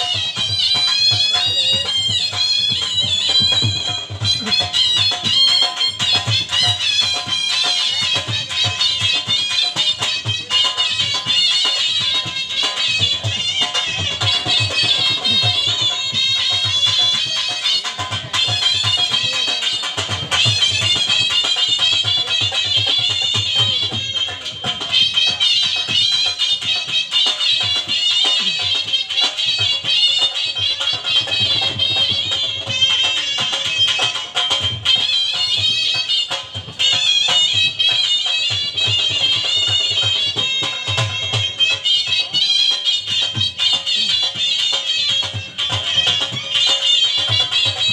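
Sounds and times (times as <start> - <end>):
dhol drum rhythm: 0.0 - 47.9
shehnai melody: 0.0 - 47.9.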